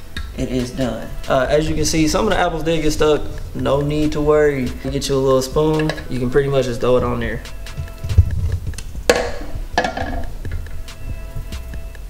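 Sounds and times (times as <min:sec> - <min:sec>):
background music with bass: 0:00.0 - 0:12.0
metal spoon scraping metal pan: 0:01.0 - 0:07.8.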